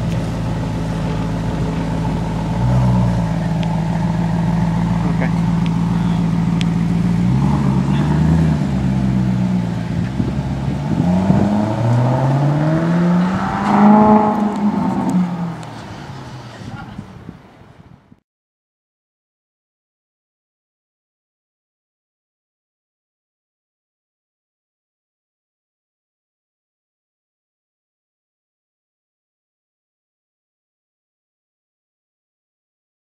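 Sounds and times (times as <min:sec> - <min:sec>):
car engine idling and accelerating: 0:00.0 - 0:18.1.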